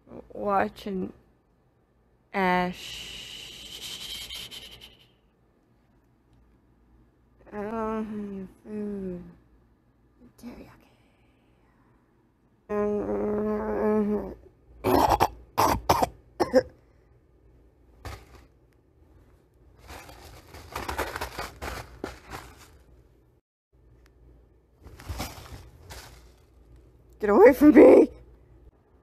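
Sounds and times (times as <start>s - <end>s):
person coughing: 14.8s - 16.8s
plastic packet crinkling: 19.8s - 23.1s, 24.8s - 26.8s.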